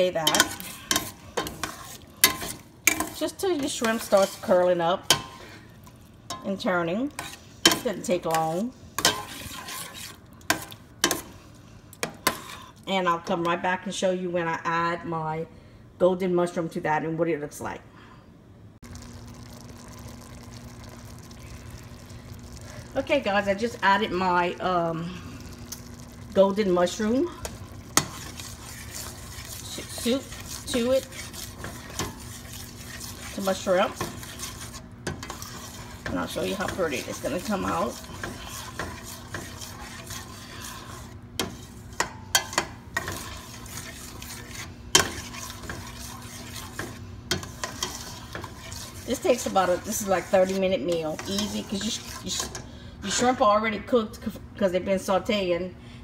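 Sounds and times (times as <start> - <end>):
spoon stirring thick sauce: 0.0 - 5.6, 7.1 - 11.3, 27.2 - 52.6
shrimp sizzling in butter: 0.0 - 11.4, 18.8 - 52.7.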